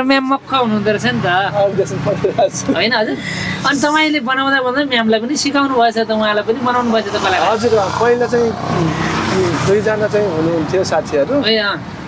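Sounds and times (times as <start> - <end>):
person speaking: 0.0 - 11.8.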